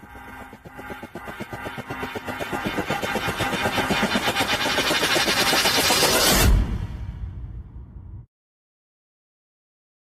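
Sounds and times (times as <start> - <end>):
steady tones: 0.0 - 6.5
rapid electronic pulsing: 0.0 - 6.8.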